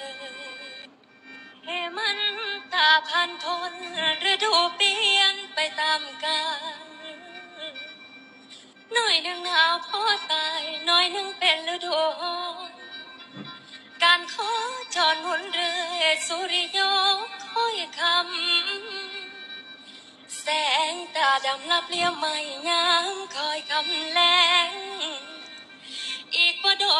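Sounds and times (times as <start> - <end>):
woman singing slow melody: 0.0 - 0.9, 1.7 - 7.9, 8.9 - 13.0, 14.0 - 19.4, 20.3 - 26.9.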